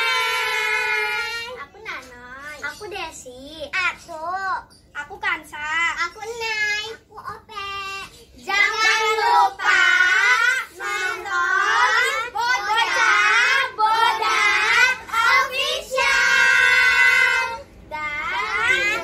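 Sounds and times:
girls singing together: 0.0s - 1.6s, 7.9s - 19.0s.

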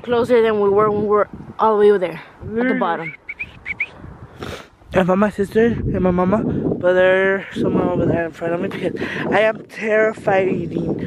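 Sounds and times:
small bird chirping: 2.8s - 4.0s.

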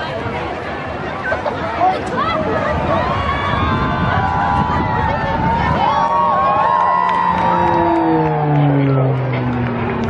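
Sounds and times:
propeller aircraft flying past: 5.5s - 10.0s.

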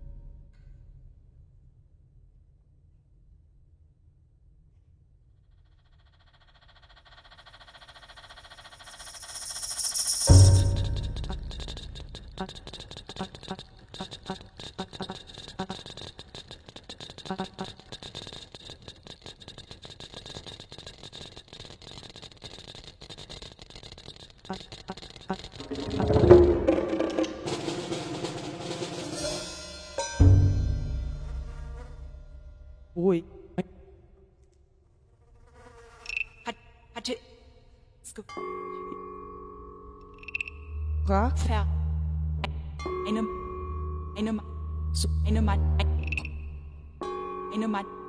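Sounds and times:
crackling rattling electronic clicks: 6.4s - 25.9s, 40.1s - 41.6s, 44.1s - 47.2s
faint buzzing electronic texture: 39.2s - 48.0s.

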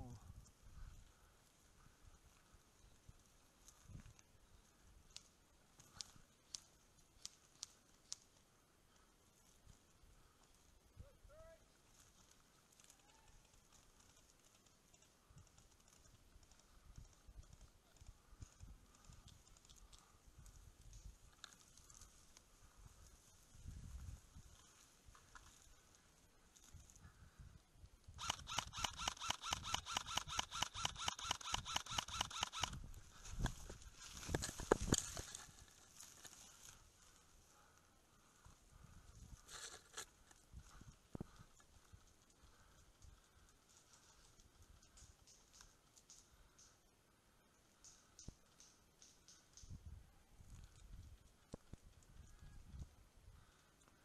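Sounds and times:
dry bracken rustling: 11.6s - 27.4s, 32.8s - 46.6s.

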